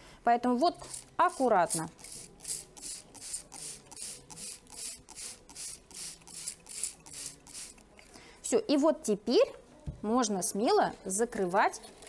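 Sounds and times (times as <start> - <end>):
spray bottle spritzing: 0.8 - 7.8.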